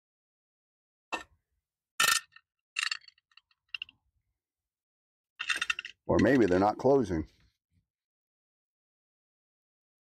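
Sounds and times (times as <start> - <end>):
metal cover clinking: 5.4 - 6.6.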